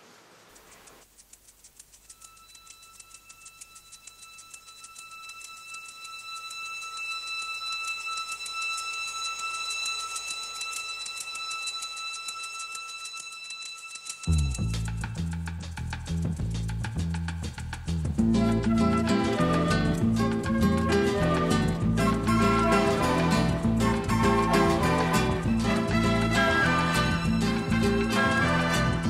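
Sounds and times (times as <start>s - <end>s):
fast clock-like ticking: 0.5s - 29.0s
steady high ringing tones: 1.8s - 15.0s.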